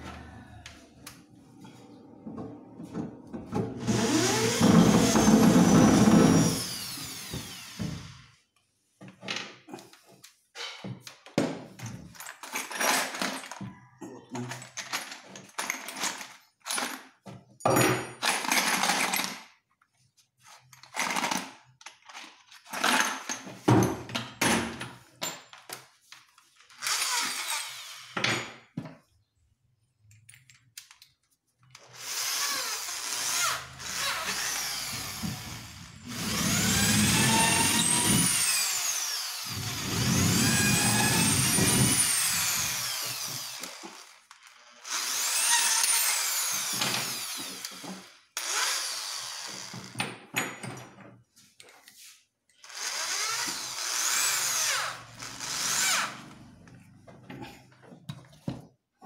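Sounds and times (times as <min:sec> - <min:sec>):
power drill drilling into wood: 0:03.8 - 0:08.3, 0:26.8 - 0:28.2, 0:31.9 - 0:50.0, 0:52.6 - 0:56.5.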